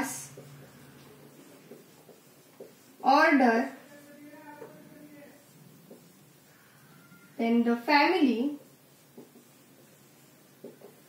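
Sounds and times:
marker writing on whiteboard: 0.0 - 11.0
marker tip tapping board: 10.6 - 11.0.

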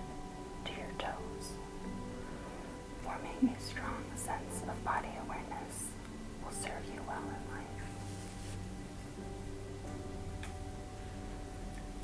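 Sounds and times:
spa music of held tones: 0.0 - 12.0
soft whispering: 0.6 - 8.6.

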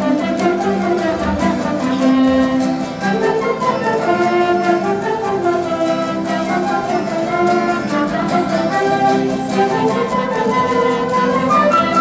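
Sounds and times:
acoustic guitars strumming: 0.0 - 12.0
trumpet melody: 0.0 - 12.0.

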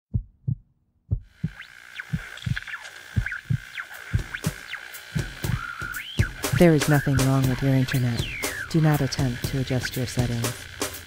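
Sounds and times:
heartbeat thumps: 0.1 - 10.4
steady hiss with high whine: 1.6 - 11.0.

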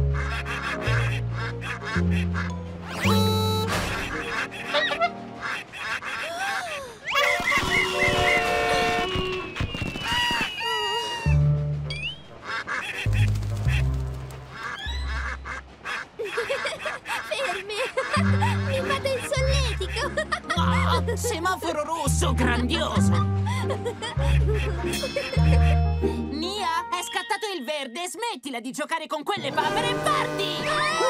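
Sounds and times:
playful music with bass line: 0.0 - 5.3, 18.2 - 27.2
cartoon ducks quacking: 0.0 - 9.1, 12.3 - 23.0, 24.0 - 26.0, 29.4 - 31.0.

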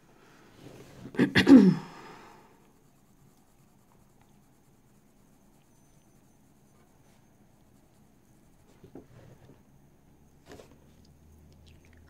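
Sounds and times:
colored pencil scratching paper: 2.5 - 9.7.

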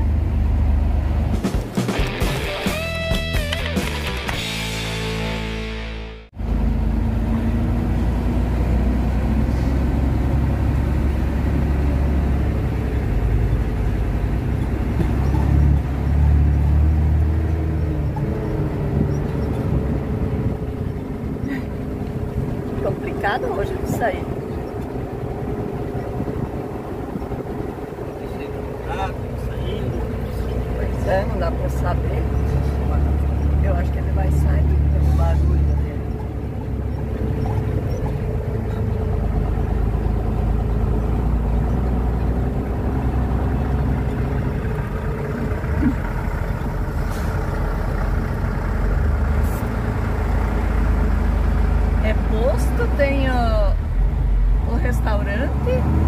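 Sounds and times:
truck engine rumble: 0.0 - 56.0.

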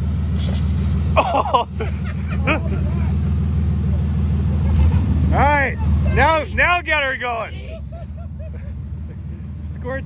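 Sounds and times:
car engine running: 0.0 - 10.0.

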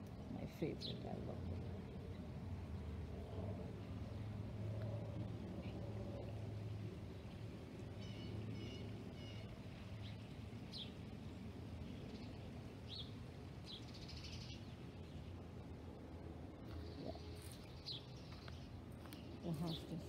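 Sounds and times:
songbirds chirping: 0.0 - 20.0
steady low hum: 0.0 - 20.0.

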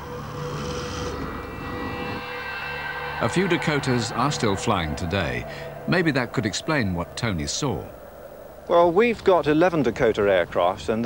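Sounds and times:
propeller plane engines droning: 0.0 - 10.9.

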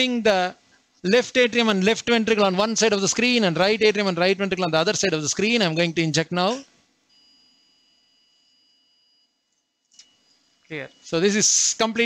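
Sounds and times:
faint two-pitch electronic tone: 7.1 - 11.7.

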